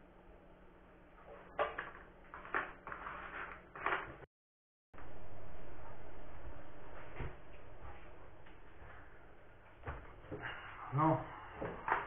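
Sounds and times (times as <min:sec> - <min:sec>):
faint steady hum: 0:05.0 - 0:12.0.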